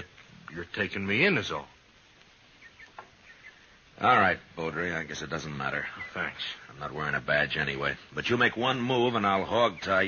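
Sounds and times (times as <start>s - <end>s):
soft background hiss: 0.0s - 10.0s
small high chirps: 2.1s - 4.1s.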